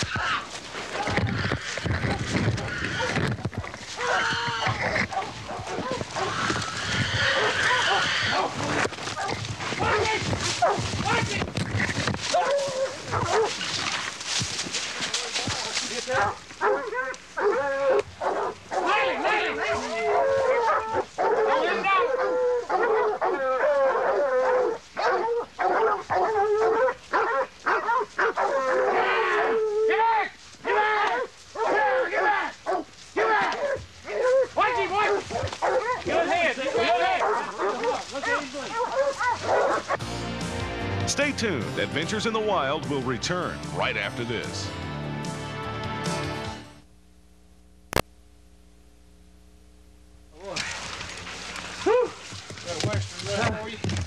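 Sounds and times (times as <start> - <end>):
dogs barking and baying: 0.0 - 30.0, 30.6 - 40.1, 50.6 - 54.0
running through brush: 0.0 - 40.0, 50.4 - 54.0.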